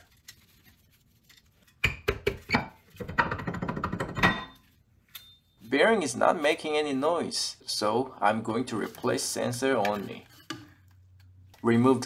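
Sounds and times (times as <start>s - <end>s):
metal knocks and clanks: 3.0s - 4.6s.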